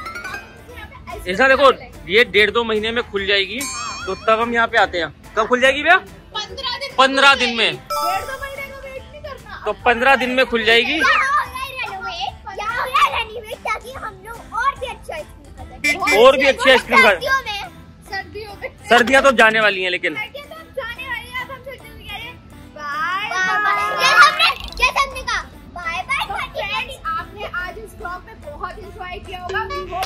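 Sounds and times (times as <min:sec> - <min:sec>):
children and woman talking: 0:00.5 - 0:02.1, 0:06.3 - 0:19.1, 0:20.0 - 0:30.0
woman and children talking: 0:20.1 - 0:30.0
woman and children shouting: 0:23.2 - 0:24.6.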